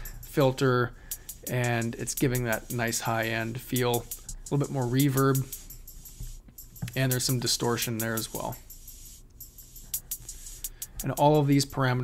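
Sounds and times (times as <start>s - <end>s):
drum machine hi-hat ticks: 0.0s - 12.0s.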